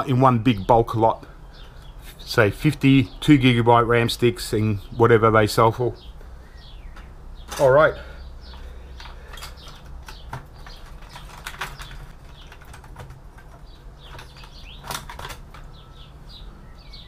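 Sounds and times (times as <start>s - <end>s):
birds chirping faintly: 0.0s - 17.0s
clicks and metallic rattles: 6.9s - 7.8s, 8.4s - 16.1s.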